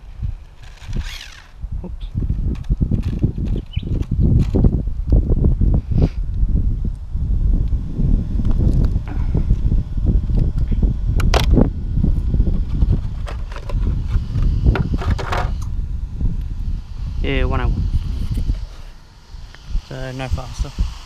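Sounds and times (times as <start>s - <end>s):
wind rumble on microphone: 0.0s - 21.0s
handling noise of toy car: 0.4s - 1.6s, 2.3s - 4.7s, 12.6s - 15.6s.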